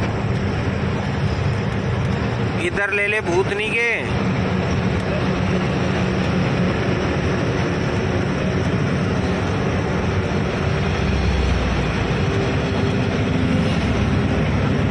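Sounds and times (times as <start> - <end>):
road noise: 0.0 - 14.9
truck engine droning: 0.0 - 14.9.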